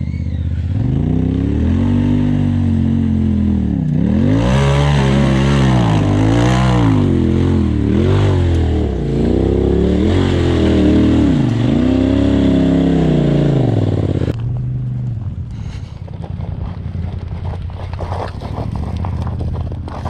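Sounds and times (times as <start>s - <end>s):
engine revving: 0.0s - 20.0s.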